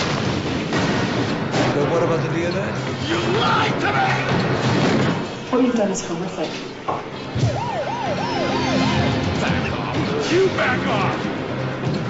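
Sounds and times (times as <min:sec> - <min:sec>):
background music: 0:00.0 - 0:12.0
siren yelping: 0:07.4 - 0:10.3.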